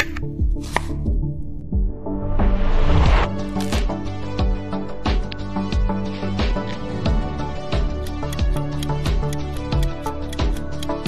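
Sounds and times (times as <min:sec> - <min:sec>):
instrumental background music: 0:00.0 - 0:11.0
scissors snipping greens: 0:07.8 - 0:11.0.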